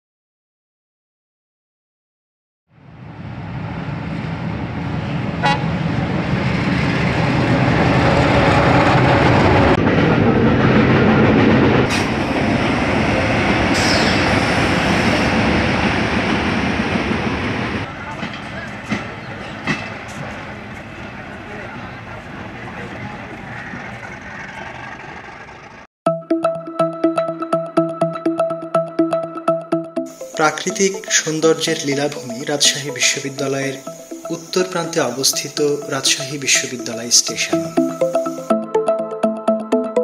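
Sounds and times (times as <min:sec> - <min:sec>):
train rumbling on rails: 0:02.7 - 0:25.9
train horn toot: 0:05.4 - 0:05.9, 0:13.7 - 0:15.4.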